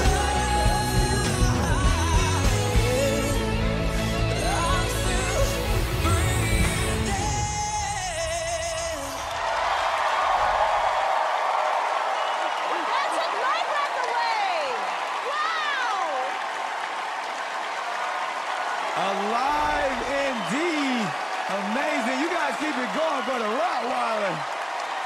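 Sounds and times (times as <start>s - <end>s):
pop ballad with band: 0.0s - 9.2s
audience cheering and applauding: 0.0s - 25.0s
whoops and screams: 9.0s - 16.6s.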